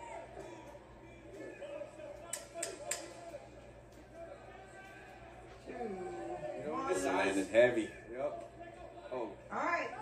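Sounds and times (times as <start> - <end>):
faint arena voices: 0.0 - 10.0.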